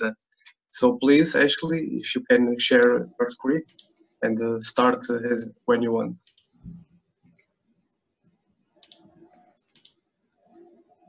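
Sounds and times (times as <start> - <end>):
faint computer mouse clicks: 6.2 - 7.5, 8.8 - 10.0.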